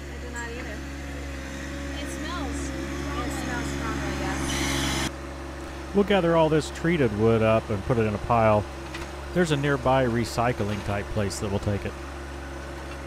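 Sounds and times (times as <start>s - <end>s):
diesel tractor engine running: 0.0s - 13.0s.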